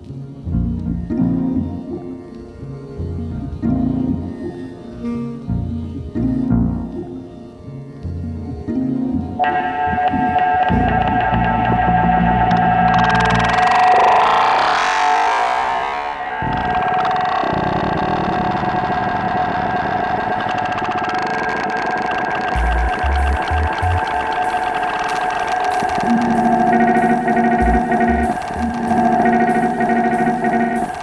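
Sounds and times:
processed cello drone: 0:00.0 - 0:31.0
repeating looped pattern: 0:09.4 - 0:15.0, 0:20.4 - 0:31.0.

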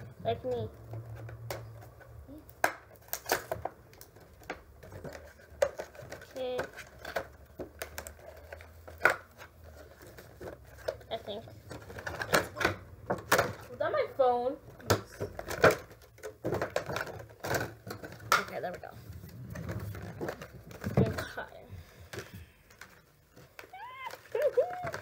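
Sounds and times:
packaging rustling and crinkling: 0:14.8 - 0:25.0.

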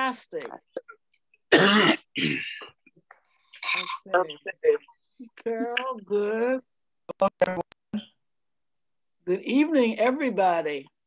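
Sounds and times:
woman speaking: 0:00.0 - 0:00.8, 0:04.0 - 0:06.7, 0:09.2 - 0:11.0
woman clearing her throat: 0:01.5 - 0:02.7.

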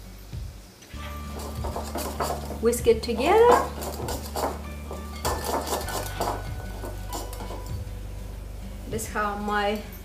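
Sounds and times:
whisk clinking against glass bowl: 0:01.3 - 0:07.8.

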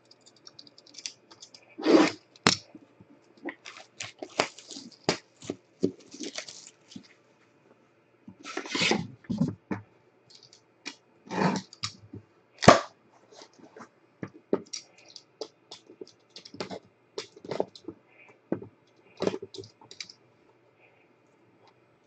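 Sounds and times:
shrink wrap crinkling and ripping: 0:03.5 - 0:07.1.

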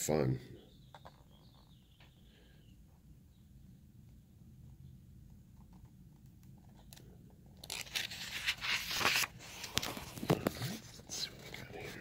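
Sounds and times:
paper pages rustling: 0:07.6 - 0:12.0.

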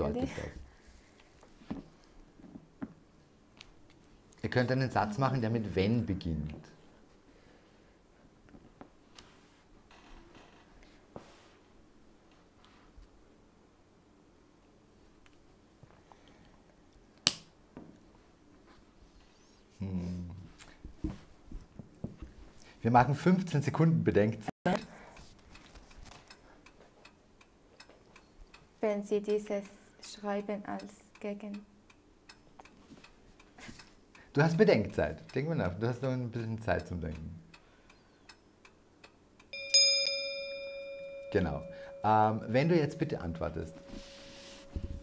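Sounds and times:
clock ticking: 0:30.4 - 0:39.5
bell-like chime tone: 0:39.6 - 0:45.0.

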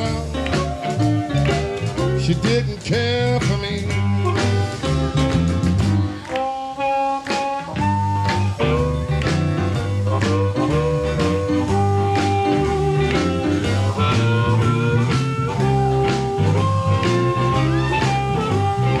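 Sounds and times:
electric blues band playing: 0:00.0 - 0:19.0.

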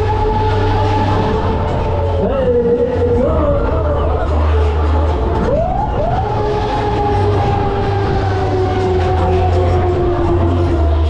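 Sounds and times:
deep bass beat: 0:00.0 - 0:11.0
fairground ride music: 0:00.0 - 0:11.0
siren wailing: 0:00.0 - 0:11.0.

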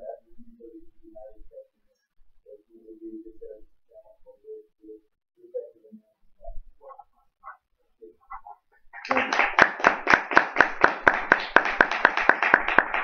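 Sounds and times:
audience applauding: 0:09.0 - 0:13.0
person clapping close by: 0:09.0 - 0:13.0.

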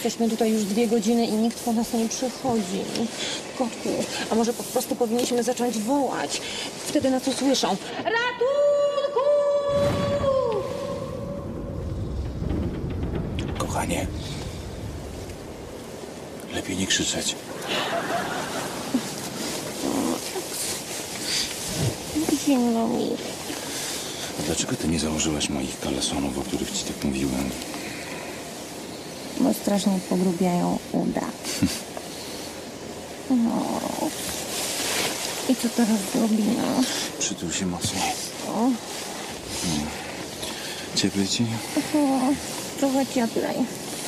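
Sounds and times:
blowing wind: 0:00.0 - 0:44.0.

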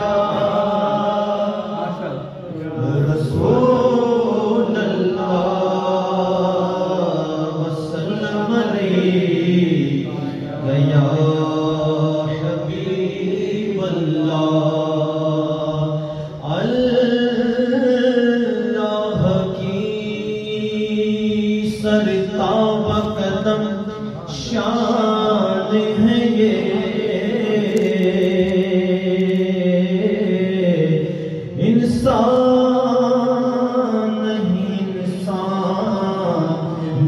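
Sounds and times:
person chanting devotional song: 0:00.0 - 0:37.0.

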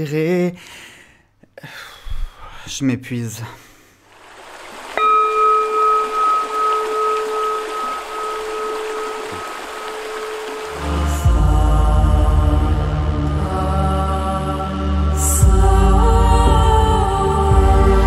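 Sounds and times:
singing bowl ringing: 0:05.0 - 0:11.2
meditative music with deep drone: 0:05.0 - 0:18.0.

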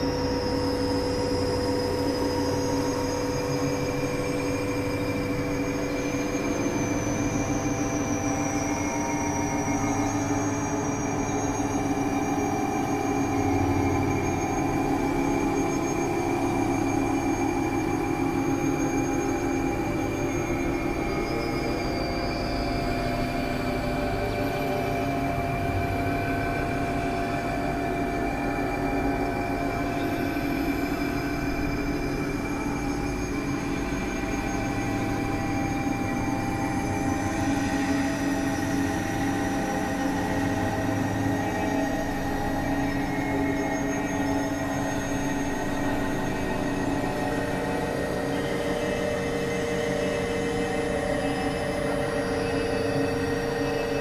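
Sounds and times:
synthesizer drone: 0:18.2 - 0:54.0.

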